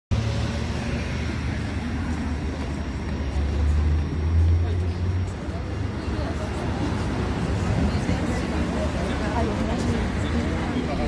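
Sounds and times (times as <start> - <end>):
street traffic rumble: 0.1 - 11.0
faint indistinct voices: 0.6 - 11.0.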